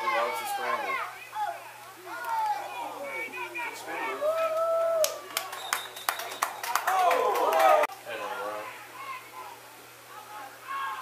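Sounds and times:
spectators shouting excitedly: 0:00.0 - 0:05.3, 0:06.8 - 0:11.0.

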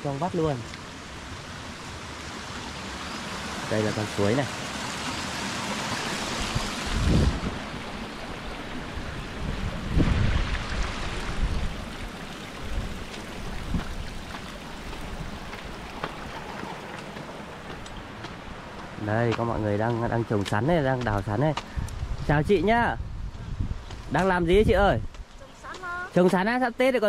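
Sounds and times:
rocky stream rushing: 0:00.0 - 0:21.8.

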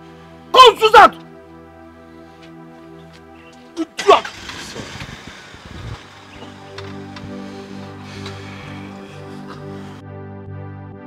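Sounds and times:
background film music: 0:00.0 - 0:11.0
rough noise: 0:04.0 - 0:09.0.

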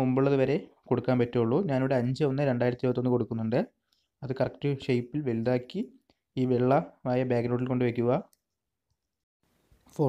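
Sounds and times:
man speaking voiceover: 0:00.0 - 0:08.2.

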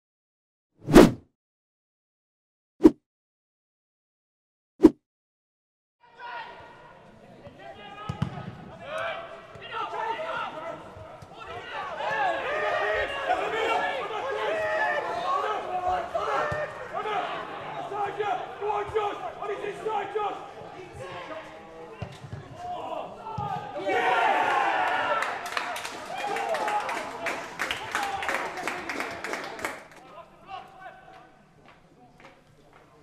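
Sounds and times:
players shouting: 0:07.6 - 0:21.6, 0:22.5 - 0:25.4
shouts of excitement: 0:23.7 - 0:29.0.

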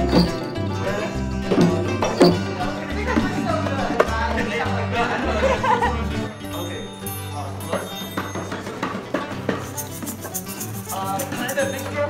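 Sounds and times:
hand drums: 0:00.0 - 0:04.5
shaker rattle: 0:09.6 - 0:12.0.

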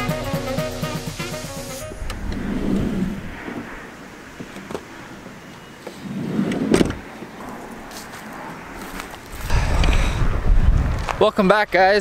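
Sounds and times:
background music: 0:00.0 - 0:02.1
highway traffic: 0:00.6 - 0:12.0
vehicle passing: 0:01.8 - 0:05.2.

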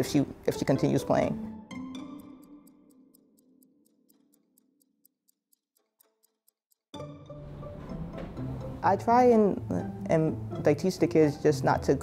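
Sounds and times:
fast light ticking: 0:01.7 - 0:07.0.

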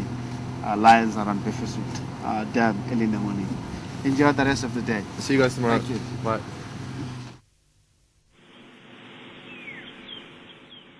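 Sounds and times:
outdoor ambience hiss: 0:00.0 - 0:10.9
bird whistle sliding downward: 0:09.3 - 0:10.8.

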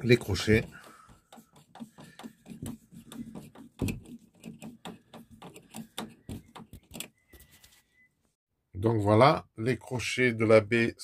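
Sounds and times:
screwdriver and metal fittings clicking: 0:00.6 - 0:07.3.

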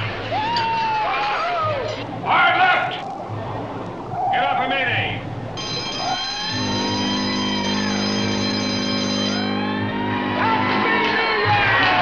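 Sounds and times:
ship's horn blast: 0:05.6 - 0:11.5.

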